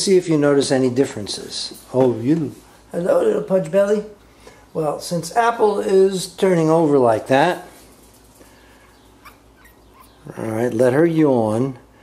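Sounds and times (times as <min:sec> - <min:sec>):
puppy squeaking faintly: 0:08.8 - 0:10.5.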